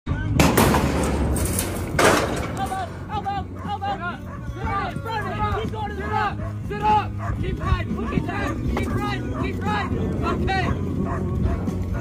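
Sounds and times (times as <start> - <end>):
heavy crashes: 0.4 - 3.6
steel chute clanging: 0.4 - 4.3.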